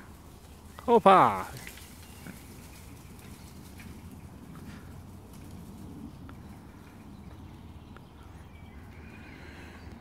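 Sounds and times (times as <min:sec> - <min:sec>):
twigs clicking underfoot: 0:00.3 - 0:06.4.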